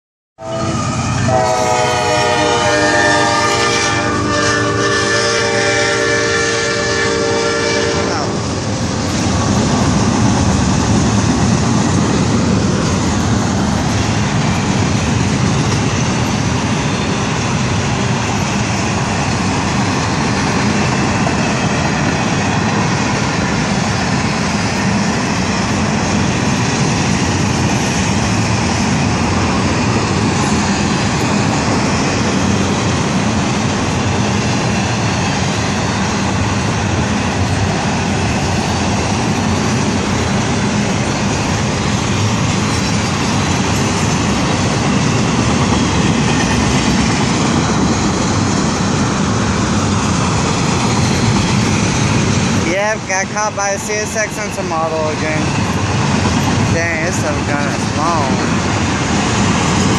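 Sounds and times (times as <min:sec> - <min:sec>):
freight train wheels rumbling on rails: 0:00.4 - 0:59.9.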